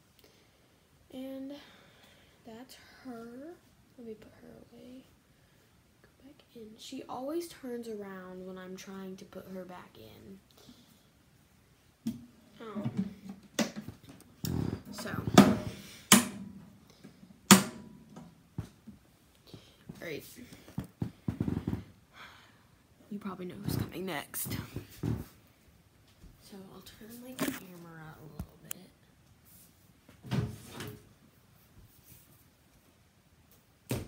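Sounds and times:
camera handling bump and rustle: 0:27.3 - 0:27.7.

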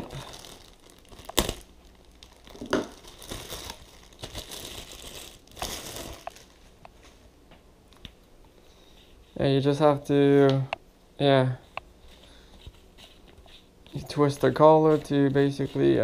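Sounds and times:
plastic bag crinkling: 0:00.0 - 0:06.8.

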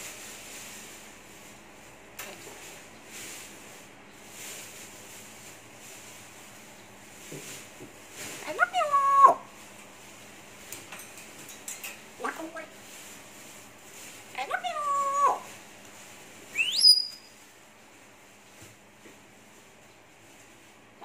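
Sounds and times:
parrot speech-like calls: 0:08.4 - 0:09.5, 0:12.2 - 0:12.8, 0:14.4 - 0:15.6
parrot rising whistle: 0:16.5 - 0:17.4.

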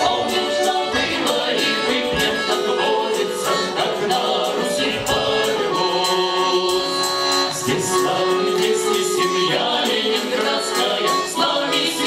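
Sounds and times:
instrumental accompaniment: 0:00.0 - 0:12.0
vocal ensemble singing: 0:00.0 - 0:12.0.

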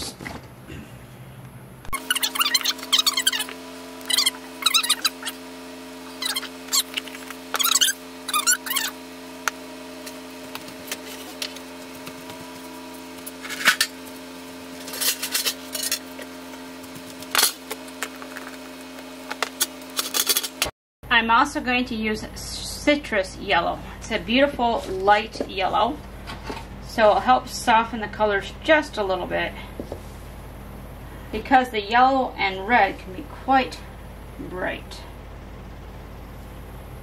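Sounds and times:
steady hum: 0:00.0 - 0:37.0.

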